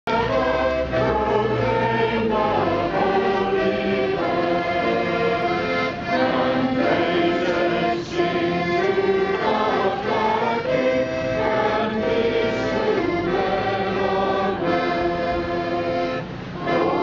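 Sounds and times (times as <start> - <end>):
children's choir singing: 0.1 - 17.0.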